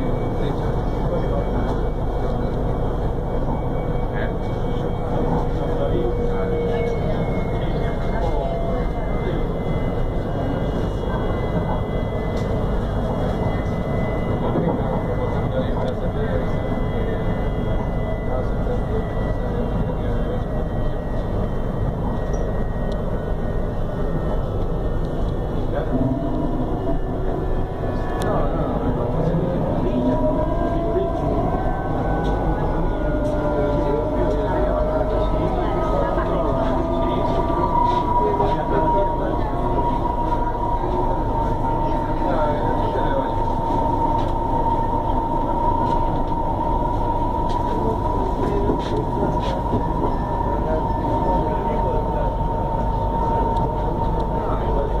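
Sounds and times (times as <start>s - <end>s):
electric traction whine: 0.0s - 55.0s
train wheels rumbling: 0.0s - 55.0s.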